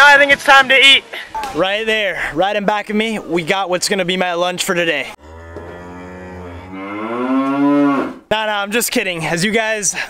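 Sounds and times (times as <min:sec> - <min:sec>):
cow mooing: 0:05.2 - 0:08.2.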